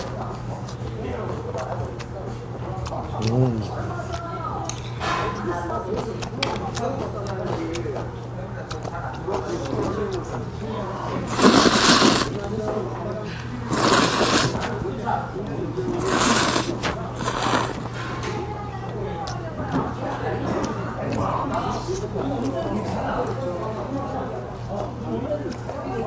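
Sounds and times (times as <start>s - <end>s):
loud noodle slurps: 11.2s - 12.5s, 13.6s - 14.8s, 15.8s - 17.9s.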